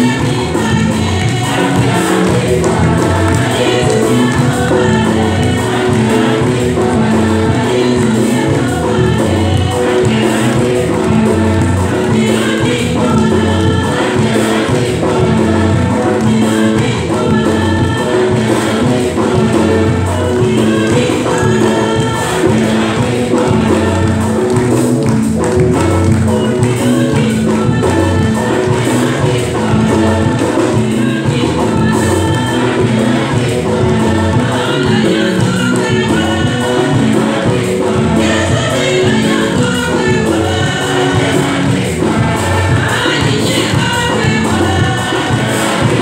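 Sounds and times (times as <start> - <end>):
church choir singing a hymn: 0.0 - 46.0.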